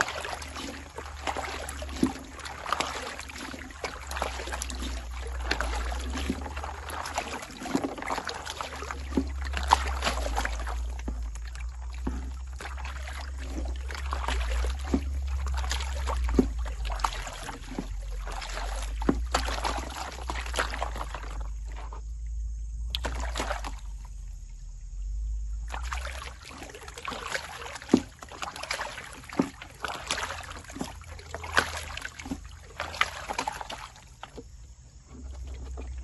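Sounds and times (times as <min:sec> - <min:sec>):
water sloshing in a pan: 0:00.0 - 0:36.0.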